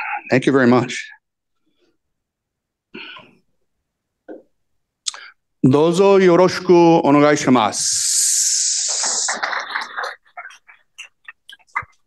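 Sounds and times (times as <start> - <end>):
audience applauding: 8.7 - 11.8.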